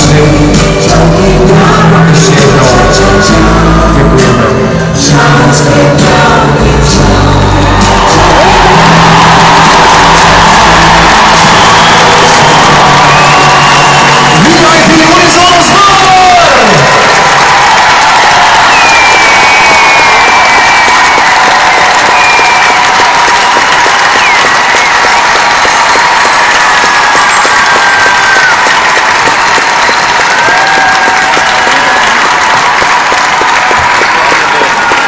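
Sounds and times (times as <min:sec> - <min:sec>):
crowd applauding and cheering: 0:00.0 - 0:35.0
high whistles: 0:18.6 - 0:28.7.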